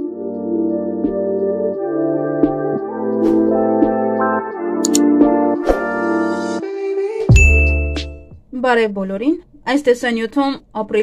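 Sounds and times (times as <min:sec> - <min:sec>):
music: 0:00.0 - 0:08.4
bright bell ding: 0:07.3 - 0:08.1.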